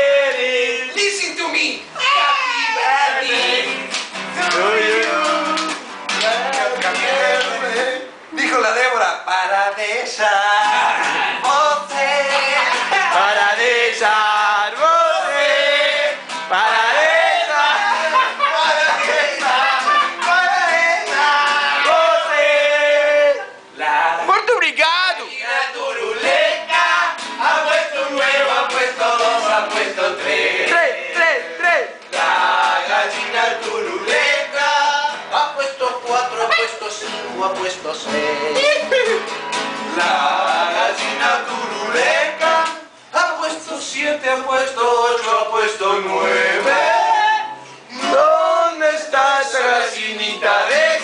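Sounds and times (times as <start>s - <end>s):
men singing together: 0.0s - 1.0s, 2.8s - 8.2s, 9.3s - 24.2s, 25.3s - 39.2s, 39.9s - 51.0s
acoustic guitar strumming: 2.8s - 8.2s, 9.5s - 23.5s, 25.0s - 51.0s.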